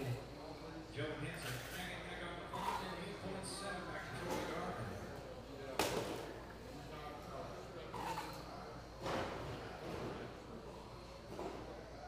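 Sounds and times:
voices echoing in large room: 0.0 - 12.0.

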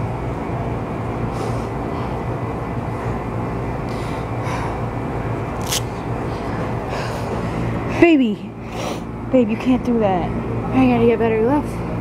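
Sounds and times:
steady low hum with rumble: 0.0 - 12.0.

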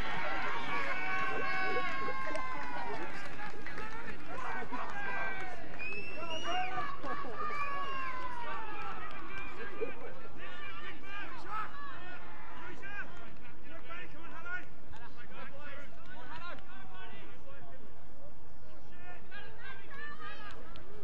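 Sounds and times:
crowd and players shouting: 0.0 - 17.6, 18.7 - 21.0
outdoor background noise: 0.0 - 21.0.

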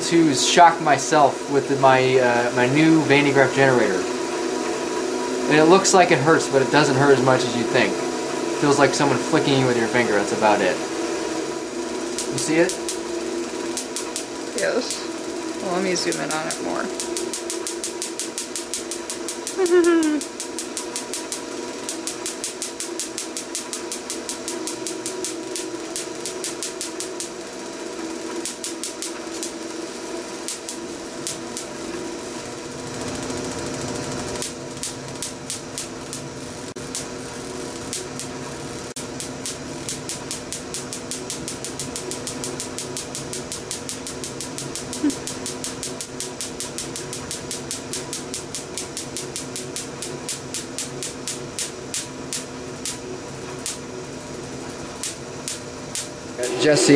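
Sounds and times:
belt motor hum: 11.4 - 53.9
static sparks snapping: 12.0 - 53.9, 54.8 - 56.2.

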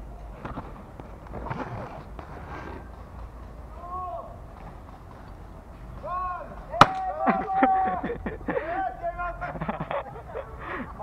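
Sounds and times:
outdoor background noise: 0.0 - 11.0
distant voices calling out: 2.0 - 11.0
sharp crack: 6.7 - 7.4.

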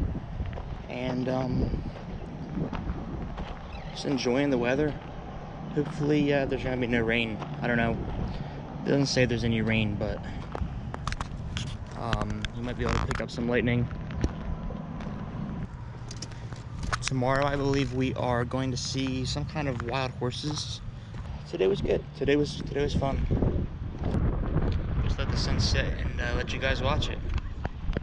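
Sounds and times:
wind buffeting microphone: 0.0 - 28.0
footsteps on gravel: 0.4 - 6.2, 7.2 - 8.6, 9.6 - 23.3.

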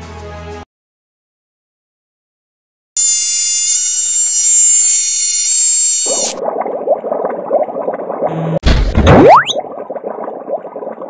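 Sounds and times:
low rough gurgling: 6.1 - 11.0.

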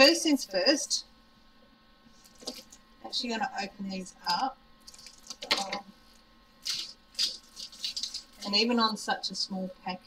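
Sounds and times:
paper wrapping rustling: 4.9 - 5.6, 6.6 - 8.4.

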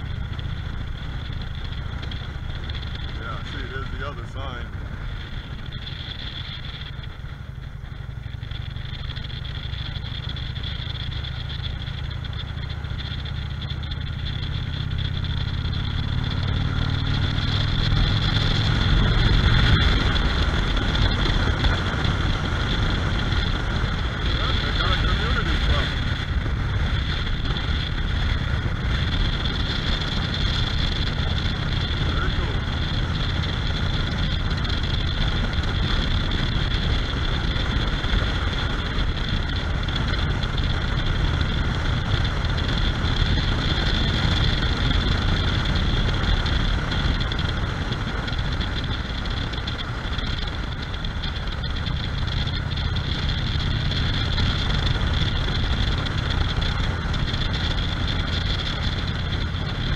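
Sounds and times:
motorcycle engine: 0.0 - 59.9
road noise: 0.0 - 59.9.

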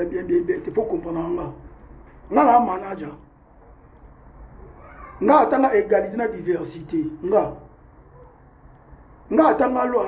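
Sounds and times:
man speaking: 0.0 - 1.7, 2.3 - 3.3, 5.2 - 7.8, 9.3 - 10.0.

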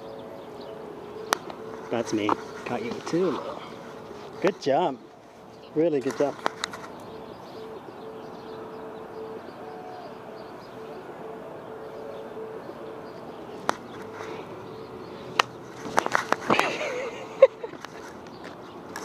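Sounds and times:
pulsing low hooting tone: 7.0 - 15.4.

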